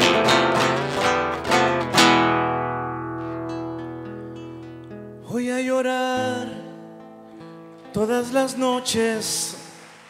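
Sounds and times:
faint guitar plucks: 0.0s - 8.0s
acoustic guitar chord ringing: 0.0s - 8.2s.

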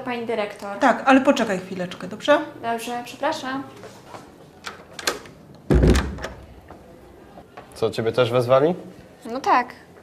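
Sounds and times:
door closing with heavy thud: 5.0s - 6.6s.

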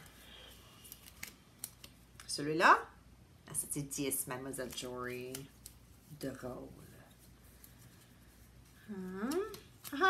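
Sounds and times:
paper cards handled: 0.0s - 2.3s, 4.6s - 6.3s, 7.2s - 10.0s.

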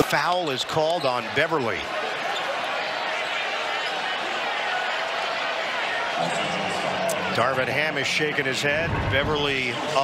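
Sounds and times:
arena crowd hubbub: 0.0s - 10.0s.

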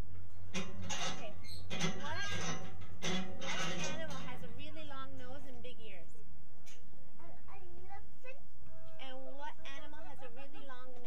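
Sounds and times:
steady low hum: 0.0s - 11.0s
children's sing-song chatter: 7.2s - 11.0s.

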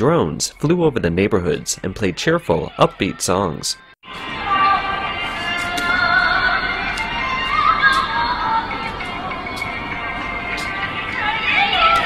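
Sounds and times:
upbeat song from loudspeaker: 1.2s - 12.0s.

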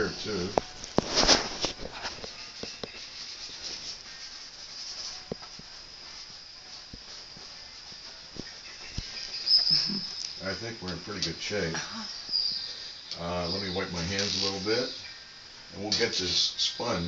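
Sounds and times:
steady hiss: 0.0s - 17.0s
chalk rubbing on paper: 2.1s - 9.6s.

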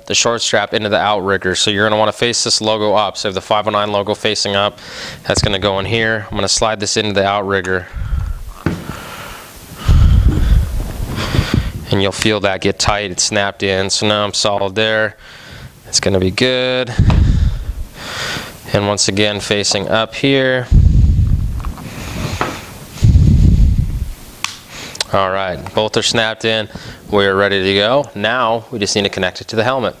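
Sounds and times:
low rubbing handling noise: 2.7s - 13.4s, 15.6s - 24.8s
handling rumble near microphone: 9.7s - 12.2s, 16.9s - 18.0s, 20.7s - 24.3s.

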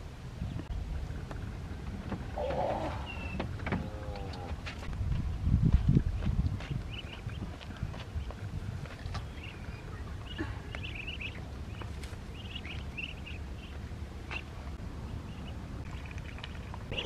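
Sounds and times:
steady low rumble: 0.0s - 17.0s
ducklings peeping: 6.2s - 17.0s.

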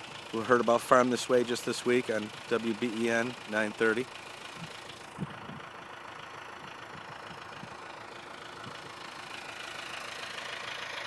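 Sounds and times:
tractor diesel engine running: 0.0s - 11.0s.

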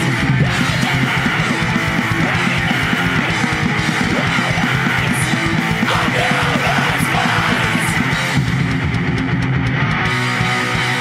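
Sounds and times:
yelled vocals: 0.0s - 8.7s
punk band playing: 0.0s - 11.0s.

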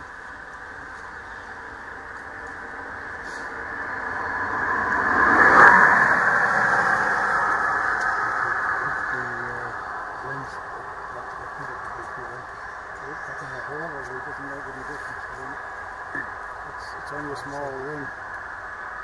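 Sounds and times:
vehicle passing by: 3.2s - 10.6s.

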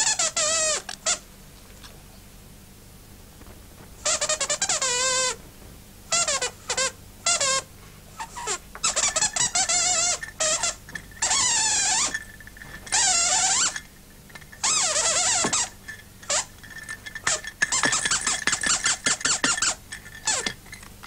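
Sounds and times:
puppet squeaker shrill squeaks: 12.9s - 13.8s, 14.6s - 15.7s.

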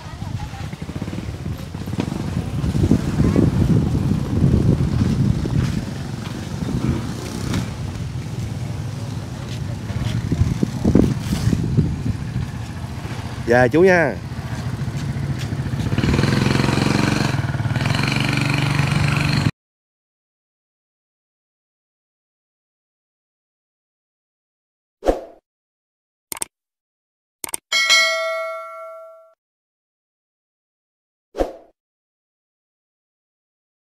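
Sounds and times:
motorbike engine running: 0.0s - 19.5s
double mouse click: 26.3s - 26.5s, 27.4s - 27.6s
notification bell chime: 27.7s - 29.4s.

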